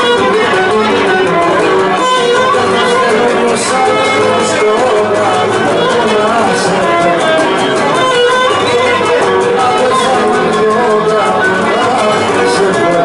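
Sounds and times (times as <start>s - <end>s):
bowed lyra melody: 0.0s - 13.0s
lute strumming: 0.0s - 13.0s.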